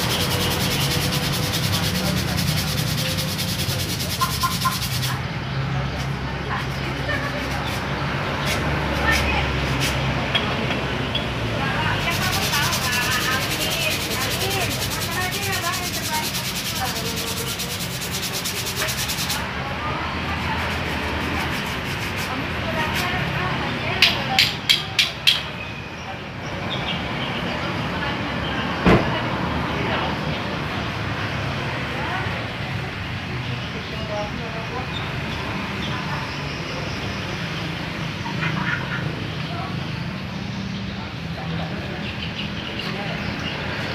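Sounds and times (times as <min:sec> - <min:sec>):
brake pad scraping on sandpaper: 0:00.0 - 0:05.2, 0:12.0 - 0:19.4, 0:20.4 - 0:23.1.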